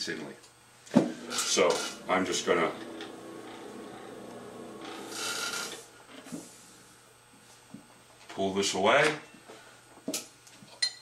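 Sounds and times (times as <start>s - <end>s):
pottery wheel running: 0.9s - 8.1s
scraping rasp: 1.1s - 6.6s.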